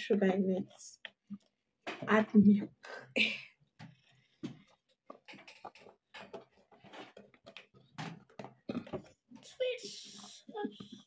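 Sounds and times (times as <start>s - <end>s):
dishes knocking and clicking: 3.8s - 9.2s.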